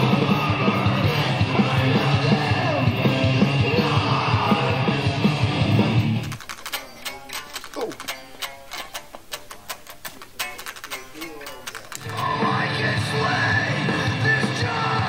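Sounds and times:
heavy rock music: 0.0 - 6.3, 11.9 - 15.0
sharp clicking notes: 5.3 - 12.5.

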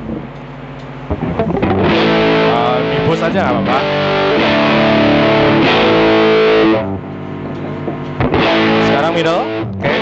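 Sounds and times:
distorted electric guitar chords: 0.0 - 10.0.

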